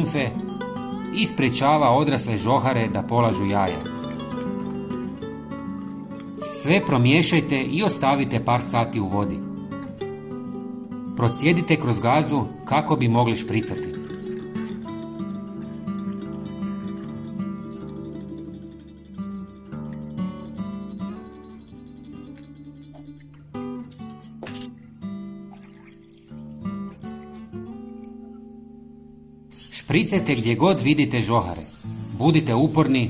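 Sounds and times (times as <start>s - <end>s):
soft plucked-string music: 0.0s - 29.5s.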